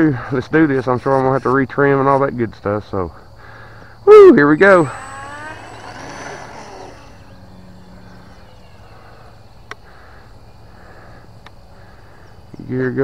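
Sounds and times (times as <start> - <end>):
model plane electric motor whine: 4.3 - 9.4.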